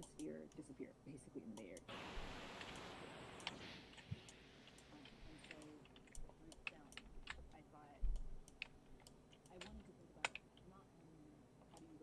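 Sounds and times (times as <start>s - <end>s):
computer keys clicking: 0.0s - 0.7s, 2.6s - 10.7s.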